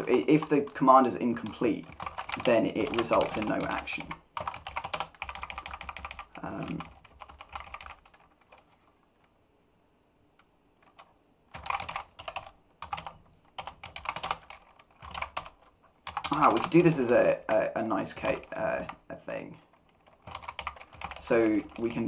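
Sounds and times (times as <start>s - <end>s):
typing on computer keyboard: 0.0s - 8.8s, 10.8s - 16.9s, 19.7s - 22.0s.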